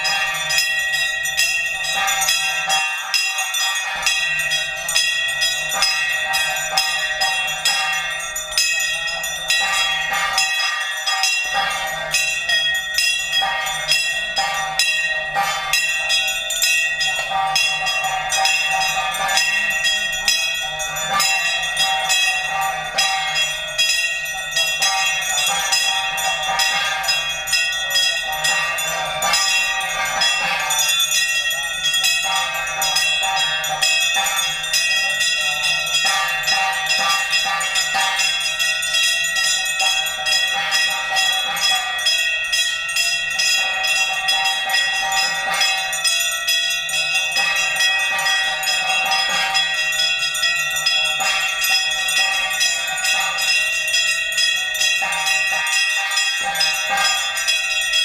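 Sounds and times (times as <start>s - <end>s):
temple bells ringing rapidly: 0.0s - 58.0s.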